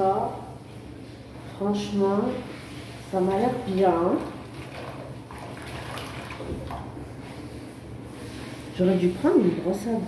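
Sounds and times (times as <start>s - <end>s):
tap water splashing in a sink: 3.8s - 6.9s.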